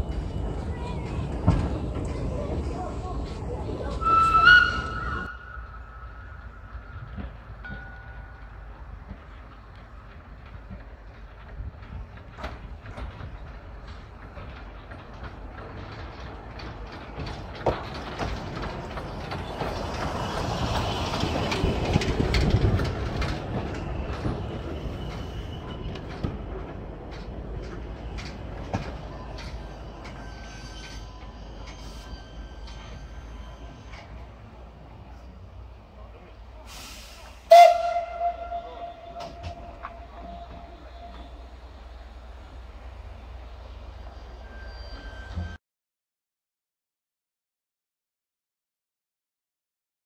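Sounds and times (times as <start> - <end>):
wheels clicking over rail joints: 0.0 - 42.9
steam locomotive rolling past: 0.0 - 45.6
steam locomotive whistle blast: 4.0 - 5.9, 36.8 - 41.5
thin squeal: 29.6 - 34.2, 44.0 - 45.6
steam hiss: 36.6 - 37.7.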